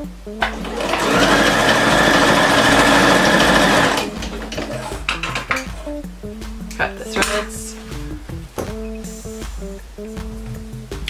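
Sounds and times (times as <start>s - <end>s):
electric sewing machine stitching: 0.4s - 5.4s.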